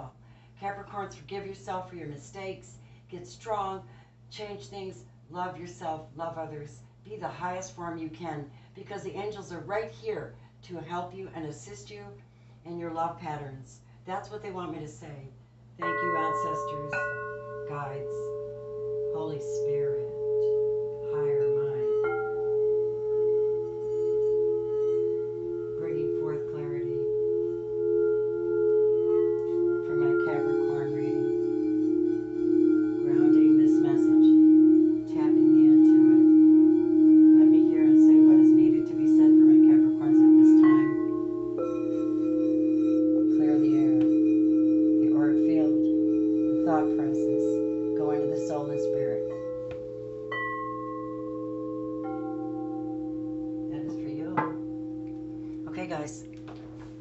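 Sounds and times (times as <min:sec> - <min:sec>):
singing bowl ringing: 0:15.8 - 0:57.0.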